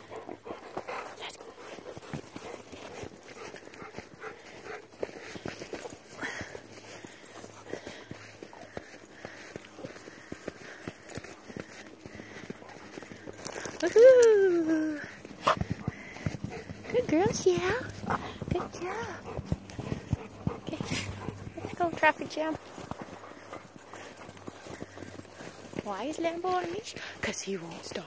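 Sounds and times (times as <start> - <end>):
dog panting: 0.0 - 13.8, 14.9 - 28.0
footsteps crunching in snow: 0.7 - 28.0.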